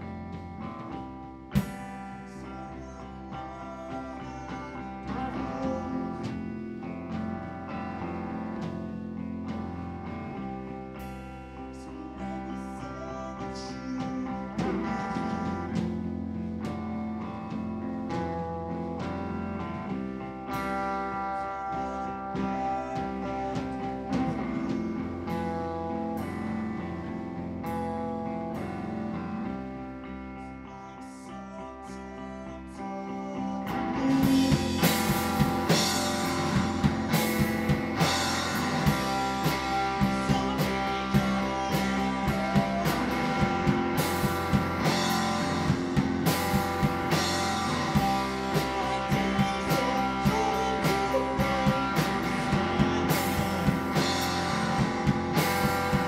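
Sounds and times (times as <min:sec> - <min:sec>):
rock band playing: 0:00.0 - 0:56.0.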